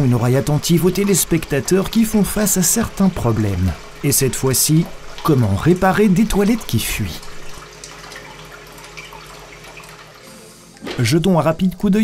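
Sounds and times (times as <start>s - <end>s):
toilet water running: 0.0s - 12.0s.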